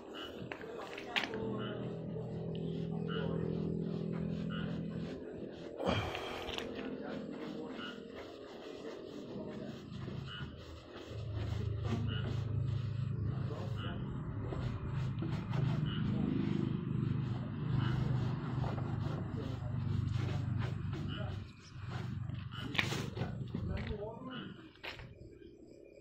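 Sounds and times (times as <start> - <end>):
cloth rubbing on car: 0.0 - 25.6.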